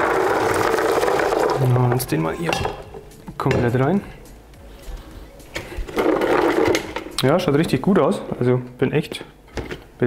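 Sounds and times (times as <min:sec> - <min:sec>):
pot and bucket knocking: 0:00.0 - 0:03.9, 0:05.6 - 0:07.3
faint background music: 0:00.0 - 0:10.0.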